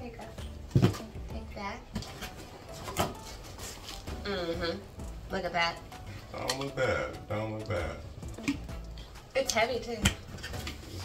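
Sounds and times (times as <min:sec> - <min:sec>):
plastic wrap crinkling: 0:02.1 - 0:04.2.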